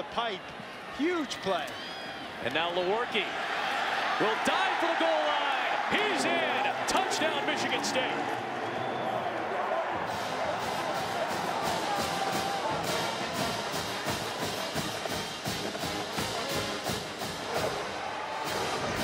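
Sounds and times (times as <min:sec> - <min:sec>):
stadium crowd noise: 0:00.0 - 0:19.0
marching band playing: 0:10.1 - 0:19.0.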